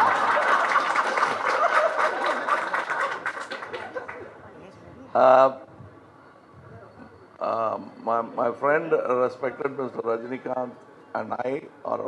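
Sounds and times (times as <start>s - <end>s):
group of people laughing: 0.0s - 4.4s.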